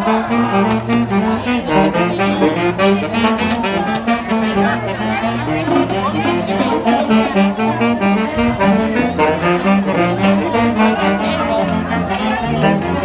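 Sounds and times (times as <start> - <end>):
saxophones playing quick tune: 0.0 - 13.0.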